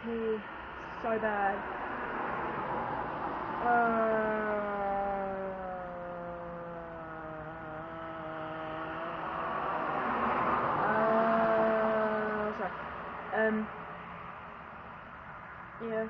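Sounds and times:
road traffic noise: 0:00.0 - 0:16.0
woman groaning: 0:03.6 - 0:09.2, 0:10.8 - 0:12.7.

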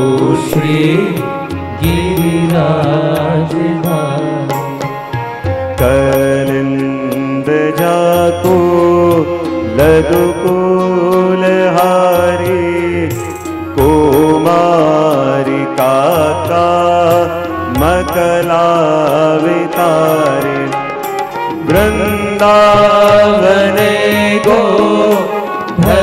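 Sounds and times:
instrumental accompaniment: 0:00.0 - 0:26.0
man singing devotional song: 0:00.0 - 0:26.0.

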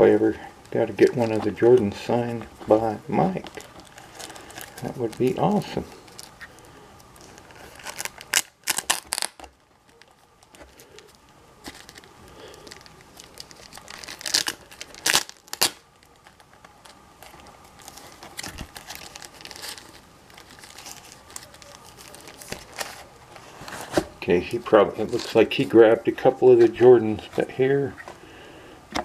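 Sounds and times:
paper rustling and crinkling: 0:00.3 - 0:28.2.

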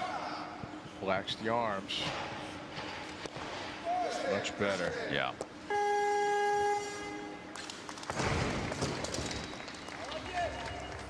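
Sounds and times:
electronic buzzer tone: 0:05.7 - 0:07.4.

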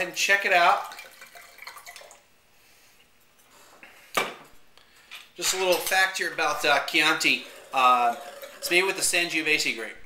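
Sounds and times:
wine pouring into glass: 0:00.6 - 0:02.2, 0:06.2 - 0:09.7.

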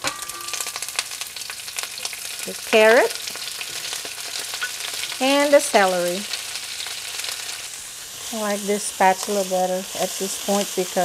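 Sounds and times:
hot oil sizzling in a wok: 0:00.0 - 0:11.0.

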